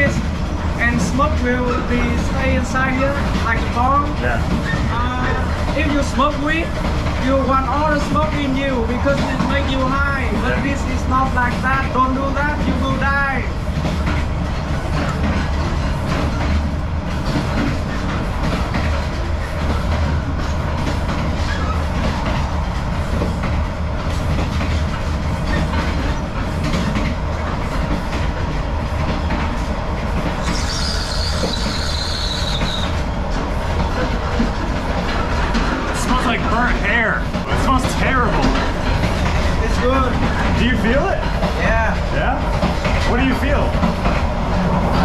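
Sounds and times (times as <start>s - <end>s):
train carriage rumble and rattle: 0.0s - 45.0s
high squeal: 30.4s - 33.1s.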